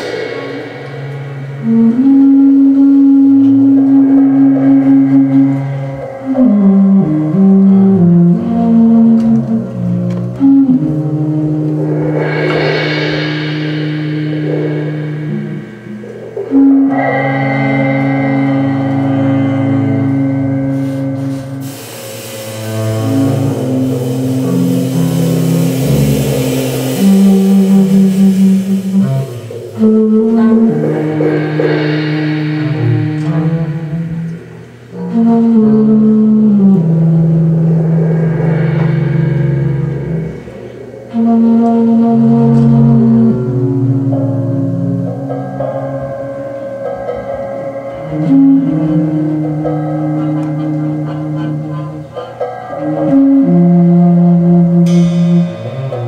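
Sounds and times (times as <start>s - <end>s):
jazz band playing live: 0.0s - 56.0s
long held low notes: 0.0s - 56.0s
bright hissing sound: 11.9s - 16.5s, 20.8s - 30.0s, 30.6s - 34.9s.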